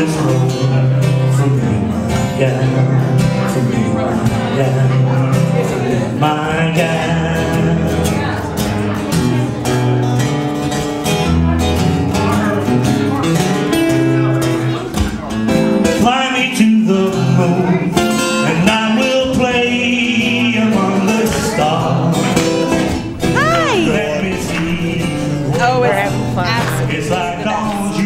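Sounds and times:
man singing: 0.0s - 8.5s, 15.8s - 28.0s
acoustic guitar strumming: 0.0s - 28.0s.

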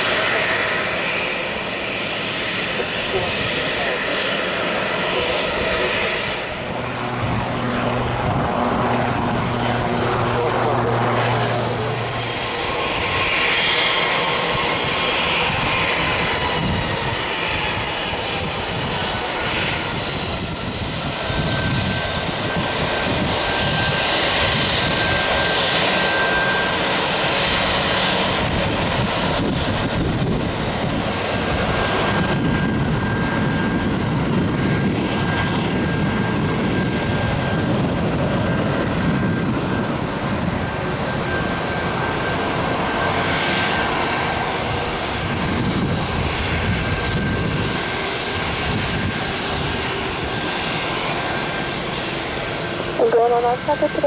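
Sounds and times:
jet engines droning: 0.0s - 54.0s
high whine: 52.9s - 54.0s.

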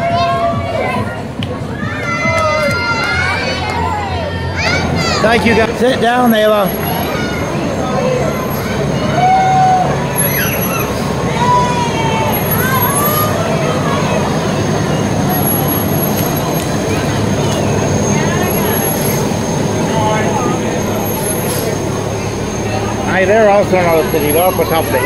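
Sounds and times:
spectators' voices: 0.0s - 25.0s
diesel truck engine running: 3.0s - 25.0s.

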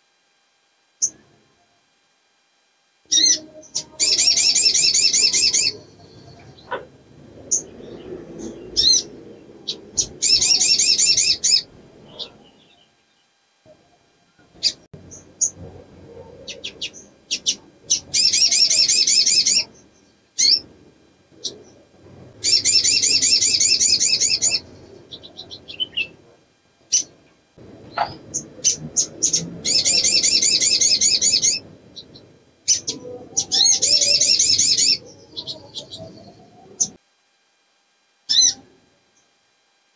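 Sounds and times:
sunbird trilling: 3.1s - 20.7s, 21.4s - 26.2s, 26.9s - 27.2s, 27.9s - 37.0s, 38.3s - 38.6s.

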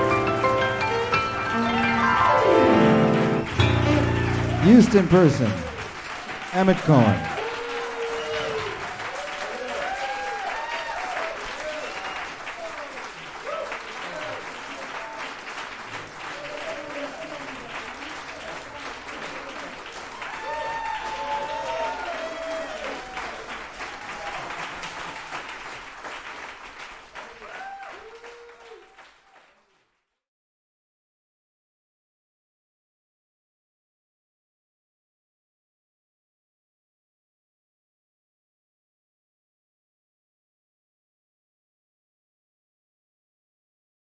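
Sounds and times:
audience applauding: 0.5s - 30.0s
shouted calls and whoops: 1.5s - 2.4s, 7.2s - 12.7s, 20.2s - 23.4s, 27.4s - 28.9s.

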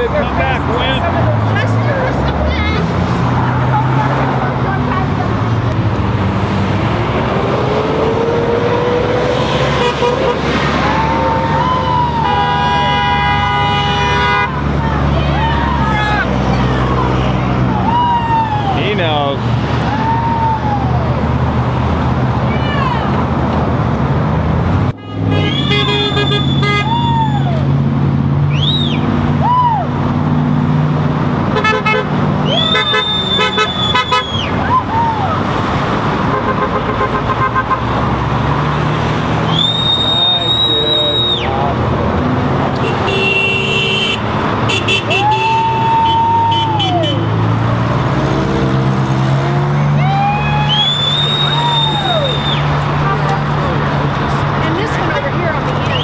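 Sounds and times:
traffic passing: 0.0s - 56.0s
car horns honking: 9.2s - 10.7s, 12.1s - 14.8s, 24.9s - 27.1s, 31.5s - 34.6s, 36.2s - 38.3s, 42.7s - 47.5s
people whooping: 10.8s - 12.9s, 17.6s - 18.8s, 19.8s - 21.2s, 25.5s - 27.8s, 28.5s - 30.0s, 32.4s - 35.4s, 39.4s - 41.7s, 45.1s - 47.2s, 49.9s - 52.8s.

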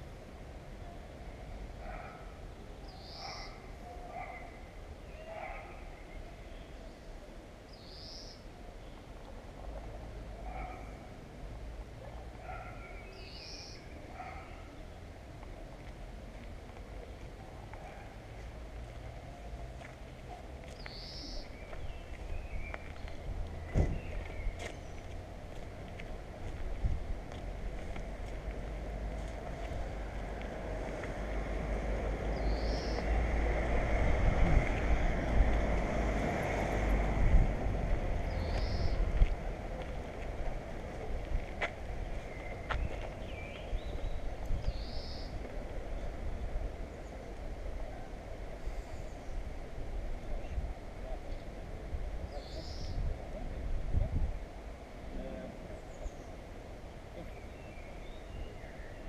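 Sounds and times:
wind rumbling on microphone: 20.9s - 32.3s, 32.9s - 55.8s
vehicle passing: 23.2s - 43.3s.

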